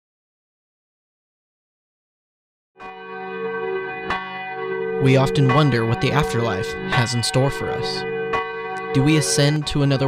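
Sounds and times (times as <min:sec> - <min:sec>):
bell tolling: 0:02.8 - 0:10.0.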